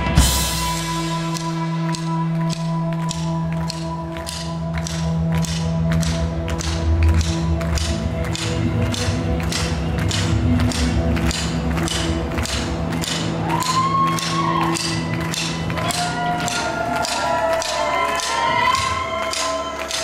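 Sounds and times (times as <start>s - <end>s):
drum kit beat: 0.0s - 2.4s
held guitar and bass notes: 0.0s - 17.1s.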